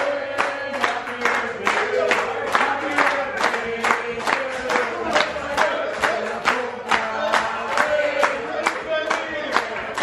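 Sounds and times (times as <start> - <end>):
group clapping in unison: 0.0 - 10.0
group singing: 0.0 - 10.0.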